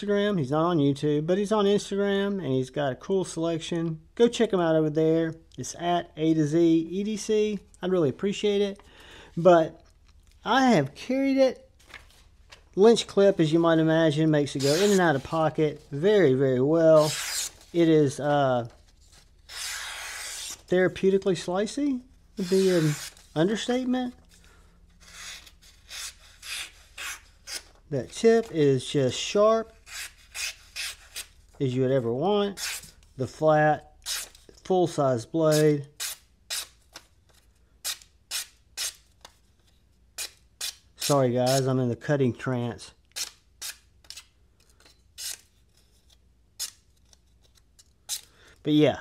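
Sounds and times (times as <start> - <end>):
paper rustling: 11.8 - 13.7, 14.6 - 16.0
knife slicing paper: 14.6 - 15.8, 17.0 - 17.8, 19.1 - 20.7, 22.4 - 23.3.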